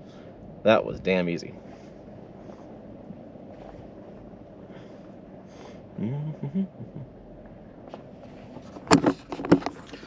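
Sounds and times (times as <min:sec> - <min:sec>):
car cabin low hum: 0:00.0 - 0:10.0.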